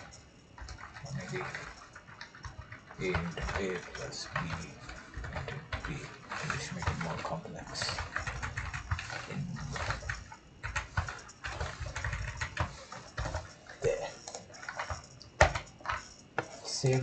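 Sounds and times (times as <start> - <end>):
keyboard typing: 0.0 - 17.0.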